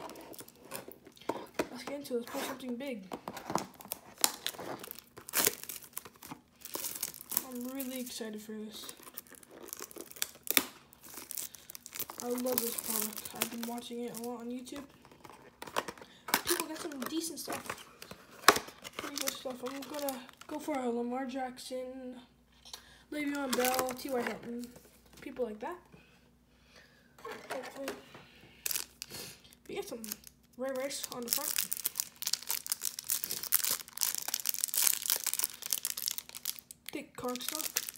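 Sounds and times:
plastic shrink-wrap crinkling: 0.0 - 1.6, 3.2 - 20.8, 23.2 - 25.0, 28.6 - 37.9.

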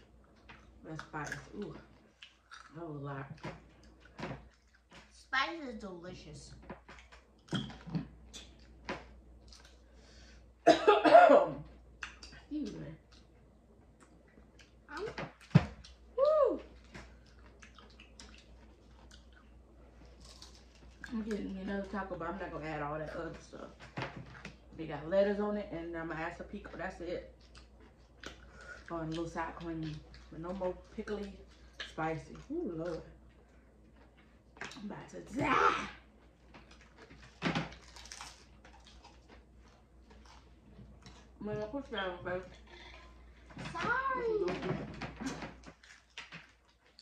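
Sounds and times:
crunching of taco shells chewed: 2.0 - 2.8, 6.8 - 10.4, 16.7 - 21.2, 27.3 - 34.8, 36.0 - 41.4, 45.2 - 47.0
taco shells crunching: 16.7 - 21.1, 36.1 - 41.4.

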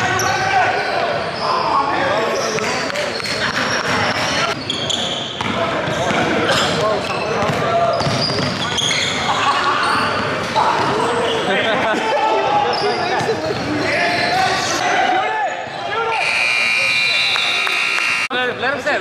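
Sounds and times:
players calling out: 0.0 - 18.3
short high shoe squeaks: 2.3 - 5.4, 8.0 - 10.3.

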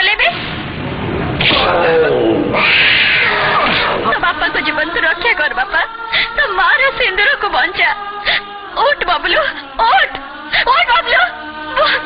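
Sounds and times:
bear roaring: 1.4 - 4.2.

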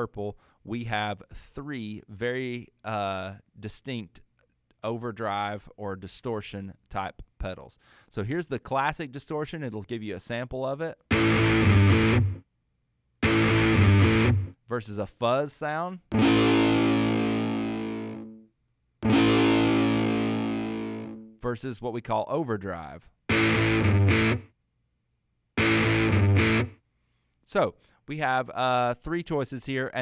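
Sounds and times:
distorted electric guitar: 11.1 - 12.4, 13.2 - 14.5, 16.1 - 18.4, 19.0 - 21.3, 23.3 - 24.5, 25.6 - 26.8.

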